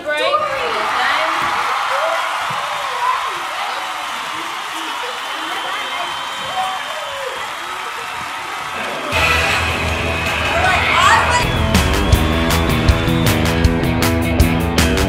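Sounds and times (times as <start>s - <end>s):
music with strong bass: 9.2s - 15.0s
children talking and calling out: 10.4s - 11.5s.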